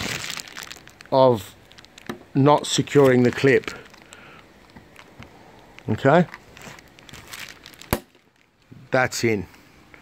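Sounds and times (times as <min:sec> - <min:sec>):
handling rustle: 0:01.7 - 0:08.6.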